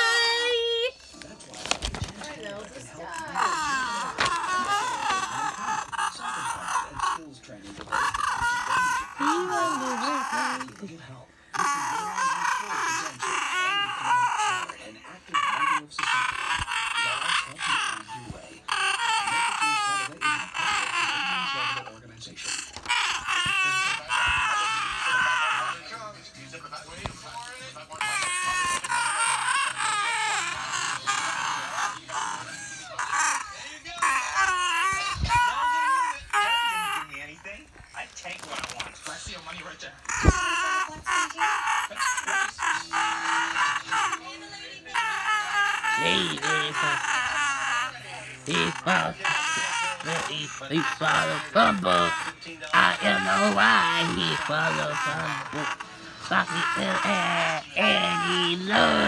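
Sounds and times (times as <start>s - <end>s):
person squealing: 3.1s - 7.2s, 7.8s - 10.6s, 45.0s - 59.0s.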